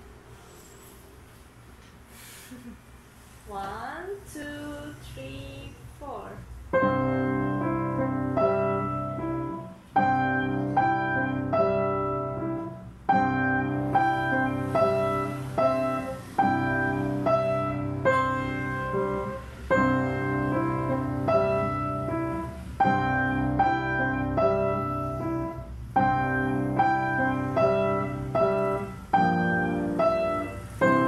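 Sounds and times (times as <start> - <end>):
piano duet: 6.7 - 31.0.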